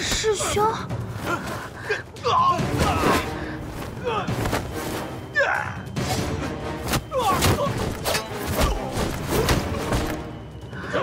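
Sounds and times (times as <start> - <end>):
fighters shouting and grunting: 0.0 - 10.0
dramatic background music: 0.0 - 11.0.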